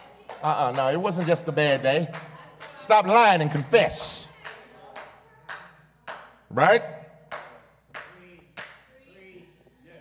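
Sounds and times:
sharp hand claps: 0.3 - 6.4, 7.2 - 8.9.

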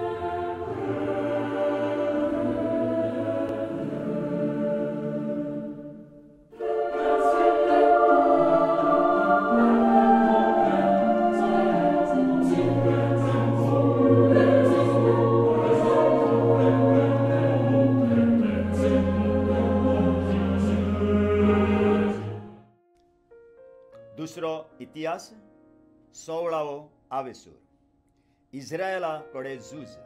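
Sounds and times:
choral singing sustained chords: 0.0 - 22.6.

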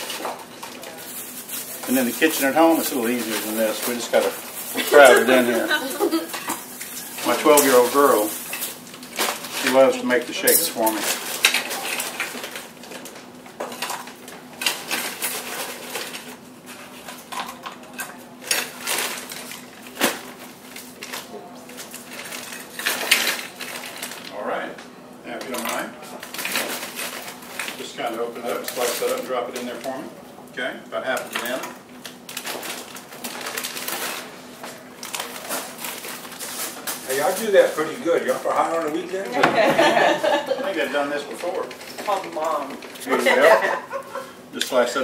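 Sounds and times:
voices talking: 1.8 - 8.5, 37.0 - 45.0.

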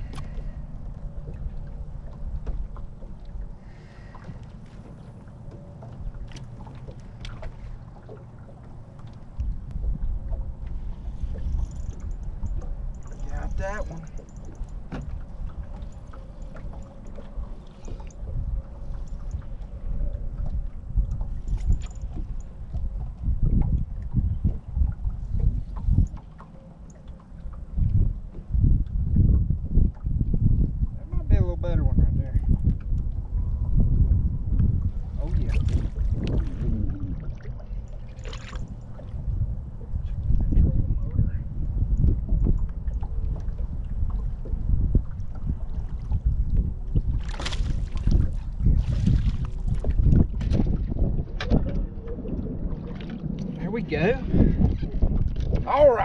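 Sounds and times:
small waves lapping against boat: 0.0 - 56.0
wind rumbling on microphone: 0.0 - 56.0.

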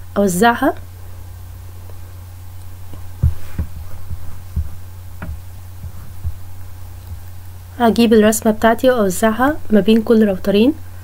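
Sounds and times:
steady low hum: 0.0 - 11.0
soft low thumps: 2.7 - 7.6.

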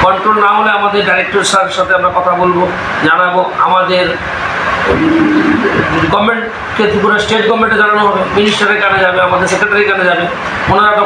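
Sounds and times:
loud rushing noise: 2.5 - 11.0.

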